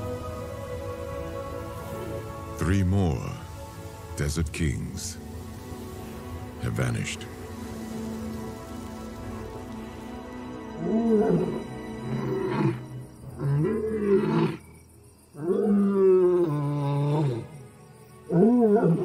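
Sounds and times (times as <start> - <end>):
soft background music: 0.0 - 19.0
lion roaring: 10.8 - 12.8, 13.4 - 14.7, 15.4 - 17.5.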